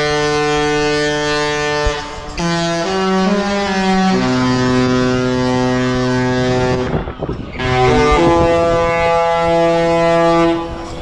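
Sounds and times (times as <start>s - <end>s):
deep ship horn: 0.0s - 11.0s.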